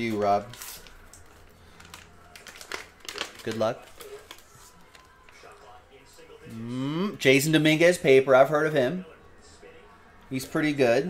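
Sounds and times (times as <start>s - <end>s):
foil pack crinkling: 0.0s - 5.5s.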